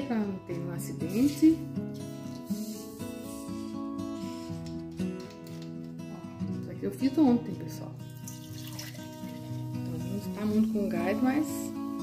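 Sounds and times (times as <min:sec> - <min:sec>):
background music: 0:00.0 - 0:12.0
liquid pouring into a glass mug: 0:08.0 - 0:09.8.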